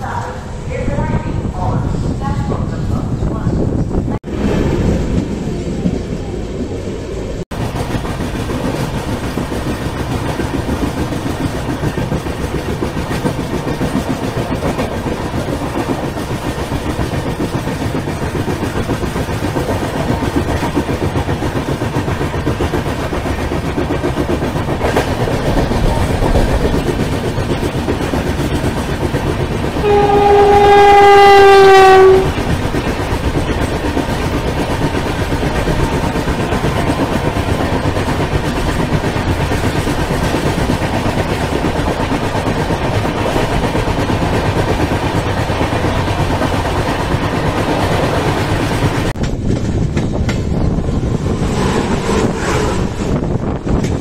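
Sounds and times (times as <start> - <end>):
train wheels rumbling and clattering: 0.0 - 54.0
train horn: 29.8 - 32.4.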